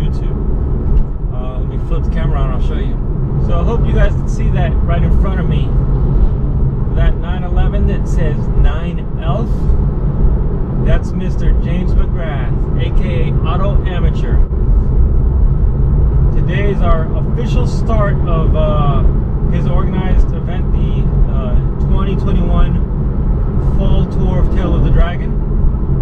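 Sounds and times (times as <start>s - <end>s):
man talking: 0.0s - 0.4s, 1.3s - 5.8s, 6.9s - 9.8s, 10.8s - 14.4s, 16.4s - 22.8s, 23.6s - 25.4s
car engine and tyre drone: 0.0s - 26.0s.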